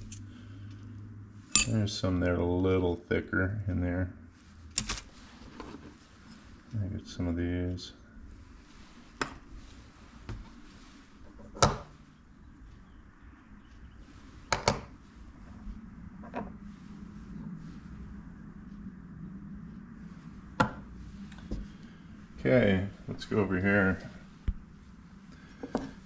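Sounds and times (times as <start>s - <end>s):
metal cutters clinking: 1.6s - 1.8s.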